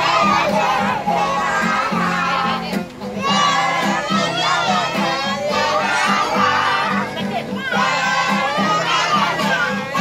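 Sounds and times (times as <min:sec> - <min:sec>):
children shouting and cheering: 0:00.0 - 0:10.0.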